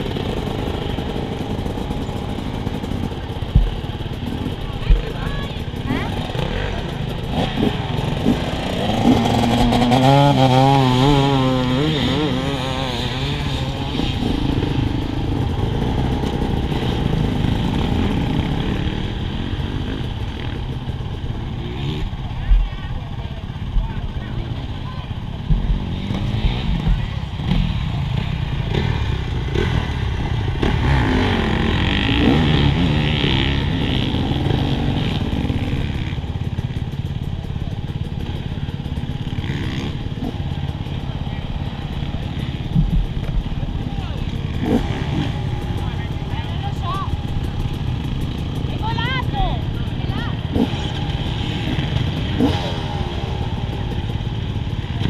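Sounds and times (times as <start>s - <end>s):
motorcycle engines idling: 0.0s - 55.0s
engine revving: 4.1s - 22.2s, 25.4s - 36.6s, 38.2s - 55.0s.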